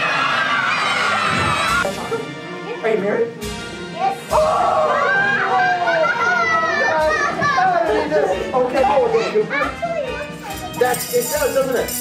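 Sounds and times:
background music: 0:00.0 - 0:12.0
children talking and calling out: 0:03.9 - 0:11.3.

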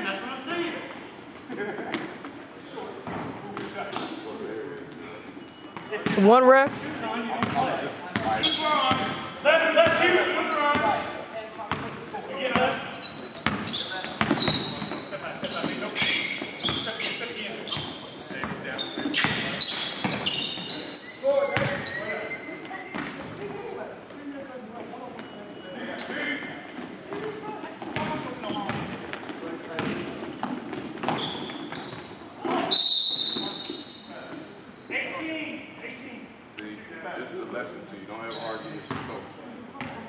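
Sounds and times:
sneakers squeaking: 0:00.8 - 0:35.3, 0:37.6 - 0:40.0.

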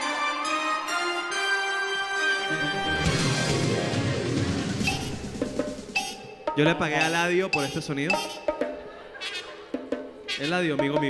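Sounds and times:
musical jingle with drums: 0:02.6 - 0:11.0.

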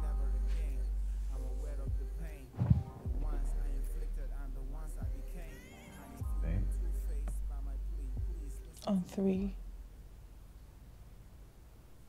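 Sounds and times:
deep bass: 0:00.0 - 0:05.5, 0:06.2 - 0:10.5
song with sung vocal: 0:00.0 - 0:09.6.

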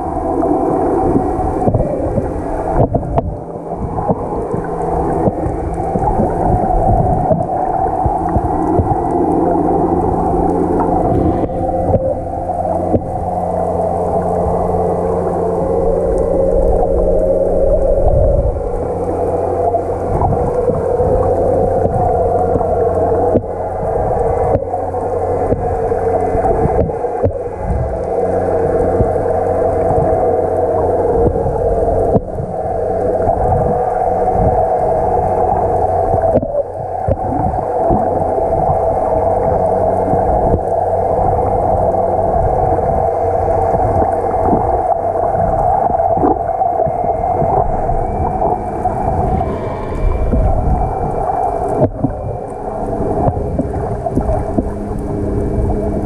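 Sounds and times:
steady underwater hum: 0:00.0 - 0:56.0.

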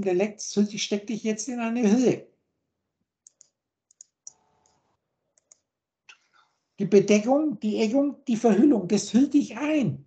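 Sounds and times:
man speaking: 0:00.0 - 0:02.3, 0:06.8 - 0:10.0
computer mouse clicks: 0:03.2 - 0:04.8, 0:05.4 - 0:06.3.

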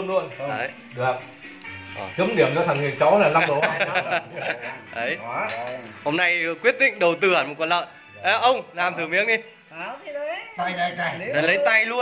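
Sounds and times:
man laughing: 0:03.4 - 0:04.8
chopsticks clinking ceramic bowl: 0:05.4 - 0:05.9.

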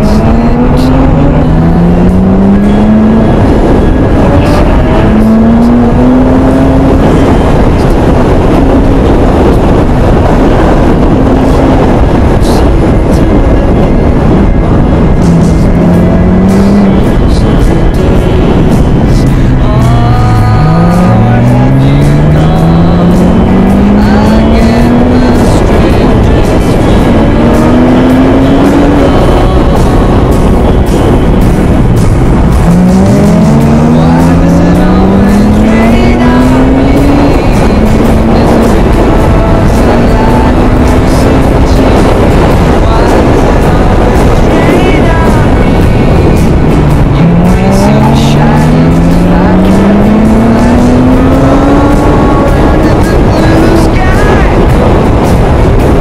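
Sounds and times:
car engine revving: 0:00.0 - 0:56.0
wind and road noise: 0:00.0 - 0:56.0.

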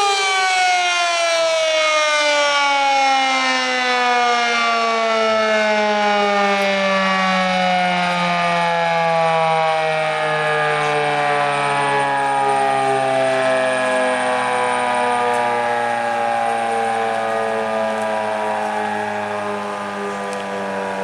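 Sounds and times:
warning siren sliding downward: 0:00.0 - 0:21.0.

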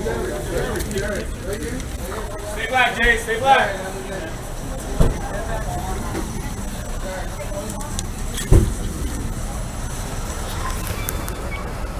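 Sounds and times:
faint voices: 0:00.0 - 0:11.9
motor vehicles rumbling: 0:00.0 - 0:11.9
loud thump: 0:05.0 - 0:05.4, 0:08.4 - 0:09.0.

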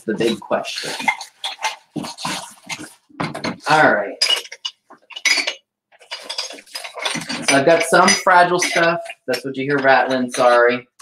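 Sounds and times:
fragile items clinking in a box: 0:00.8 - 0:09.2.

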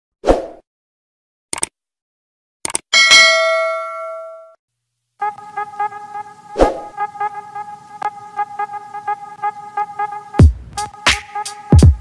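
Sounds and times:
double mouse clicks: 0:01.5 - 0:01.7, 0:02.6 - 0:02.8
bright bell ding: 0:03.0 - 0:04.6.

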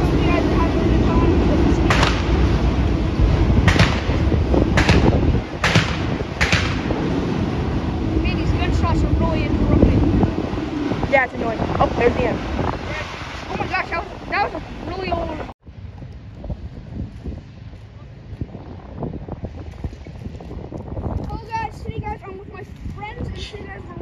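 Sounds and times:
wind on microphone: 0:00.0 - 0:24.0.

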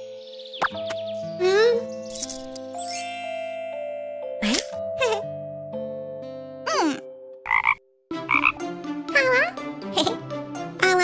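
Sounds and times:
cartoon music: 0:06.7 - 0:11.0
croak-like sound effects: 0:07.4 - 0:08.6.

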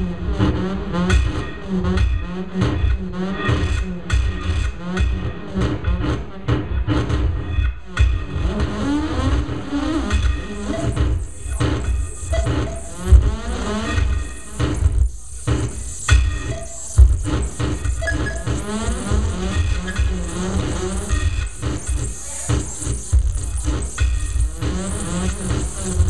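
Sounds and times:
deep bass hits: 0:00.0 - 0:26.0
sweeping synth pitch glides: 0:00.0 - 0:26.0.

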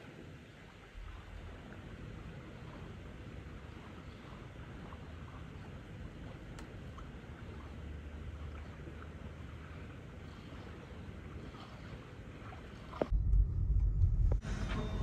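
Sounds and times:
light ticks: 0:06.4 - 0:07.2.

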